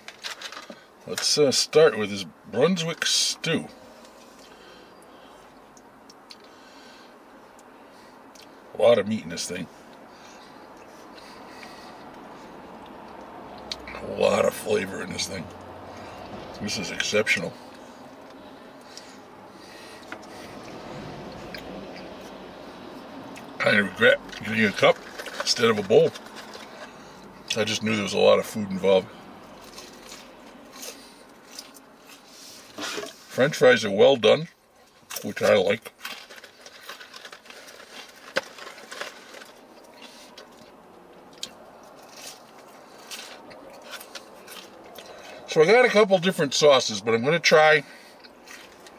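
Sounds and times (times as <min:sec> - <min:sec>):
chewing french fries: 0:09.8 - 0:14.0, 0:17.5 - 0:27.6, 0:29.4 - 0:33.1, 0:34.8 - 0:45.5, 0:48.0 - 0:48.9.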